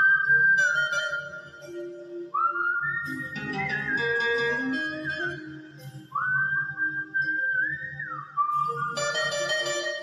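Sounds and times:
karaoke backing track: 0.0s - 10.0s
man whistling a melody: 0.0s - 10.0s.

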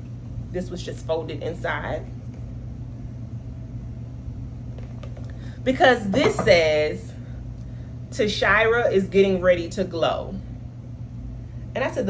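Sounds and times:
room background hum: 0.0s - 12.0s.

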